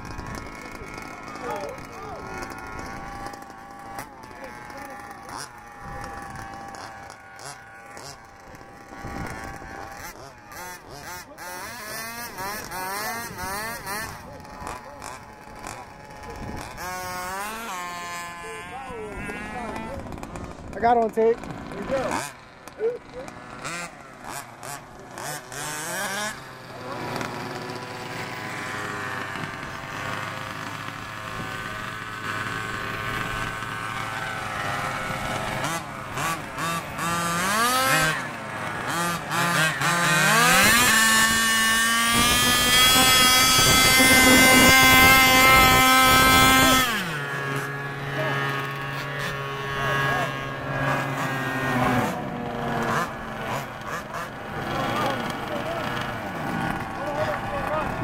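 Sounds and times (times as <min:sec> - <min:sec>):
small two-stroke engine revving: 0:00.0 - 0:58.0.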